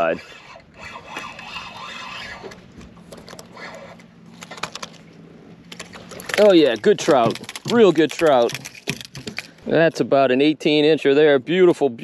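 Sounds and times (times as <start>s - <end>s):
fishing reel whirring: 0.0s - 4.9s
low steady hum: 0.0s - 12.0s.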